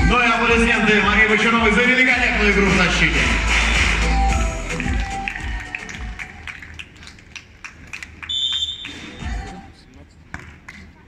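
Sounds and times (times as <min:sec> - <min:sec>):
music over loudspeakers: 0:00.0 - 0:06.9, 0:08.9 - 0:09.9
referee's whistle blast: 0:08.3 - 0:09.3.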